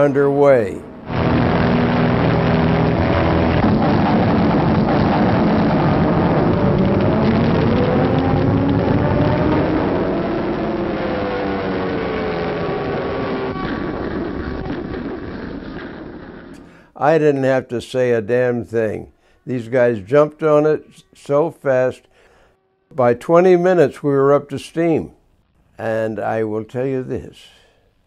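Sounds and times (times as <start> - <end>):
propeller aircraft engines droning: 0.0 - 16.8.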